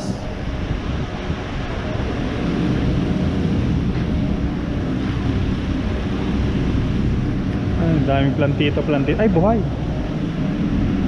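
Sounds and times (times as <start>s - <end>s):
low rumble of street noise: 0.0s - 11.0s
wind buffeting microphone: 0.0s - 11.0s.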